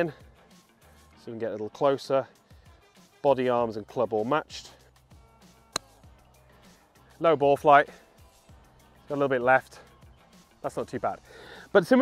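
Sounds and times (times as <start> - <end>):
golf club striking ball: 5.7 - 6.0.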